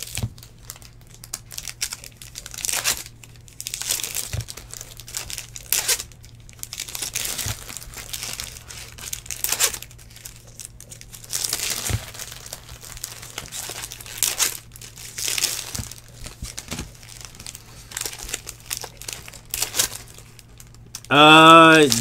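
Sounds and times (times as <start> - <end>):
card wrappers crinkling and tearing: 0.0 - 22.0
steady low hum: 0.0 - 22.0.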